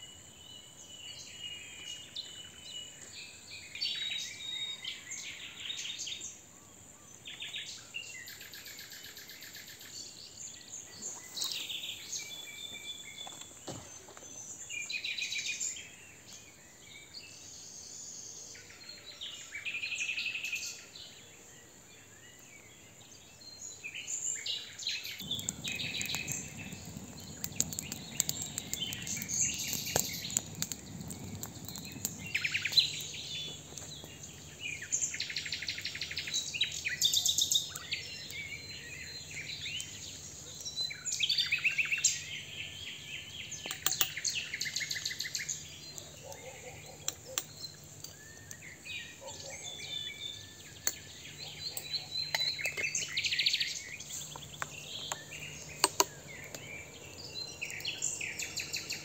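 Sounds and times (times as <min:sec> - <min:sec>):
songbirds chirping and trilling: 0:00.0 - 0:59.0.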